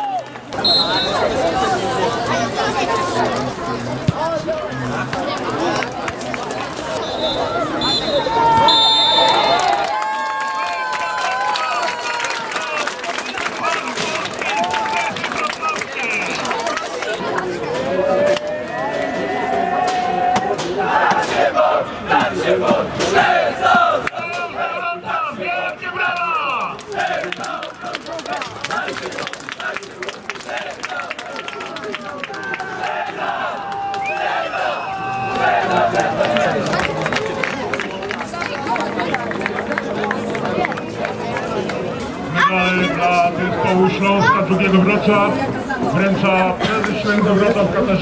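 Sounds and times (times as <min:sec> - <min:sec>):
group shouting and chanting: 0:17.9 - 0:27.7, 0:32.3 - 0:36.4.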